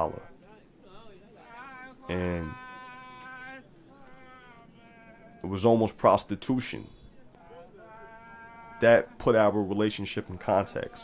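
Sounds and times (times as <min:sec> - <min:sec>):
man speaking: 0:00.0 - 0:00.4, 0:01.0 - 0:11.0
faint steady pitched tone: 0:00.0 - 0:11.0.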